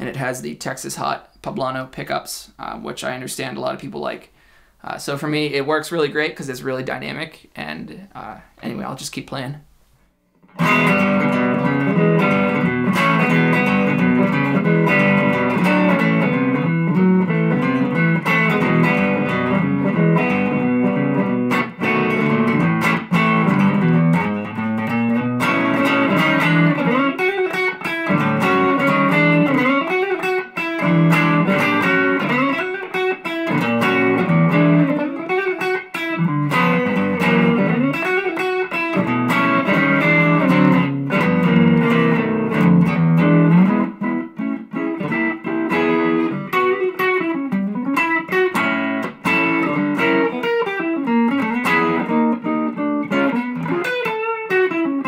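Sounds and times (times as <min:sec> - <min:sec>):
electric guitar playing: 0:10.4 - 0:55.0.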